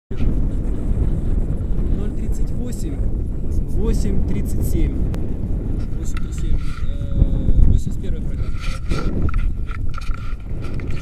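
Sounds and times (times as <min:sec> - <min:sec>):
wind buffeting microphone: 0:00.1 - 0:11.0
man's voice: 0:01.8 - 0:05.1, 0:05.9 - 0:09.1.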